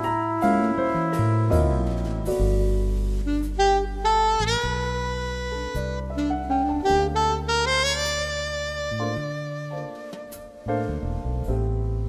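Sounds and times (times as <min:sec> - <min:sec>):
solo trumpet melody: 0:00.0 - 0:11.6
jazzy orchestral bass and chords: 0:00.0 - 0:12.0.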